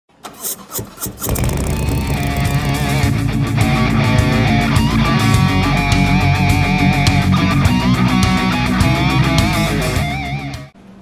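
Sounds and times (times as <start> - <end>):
motorcycle engine cranking and starting: 0.1 - 3.2
rock music with electric guitar: 1.3 - 10.7.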